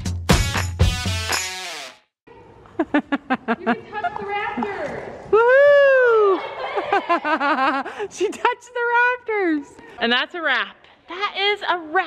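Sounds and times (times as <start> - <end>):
woman laughing: 2.7 - 4.3, 6.2 - 8.6
loud long whoop: 5.3 - 6.4.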